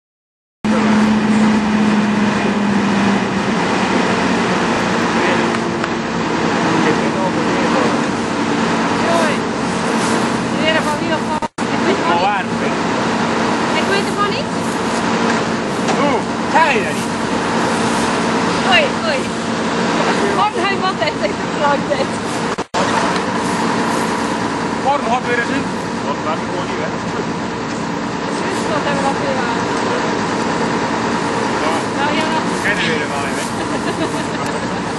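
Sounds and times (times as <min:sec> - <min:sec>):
combine harvester drone: 0:00.7 - 0:34.9
constant hum: 0:00.7 - 0:34.9.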